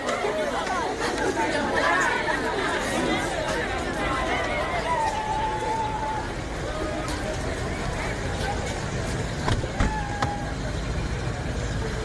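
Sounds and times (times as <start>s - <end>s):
outdoor voices: 0.0s - 12.0s.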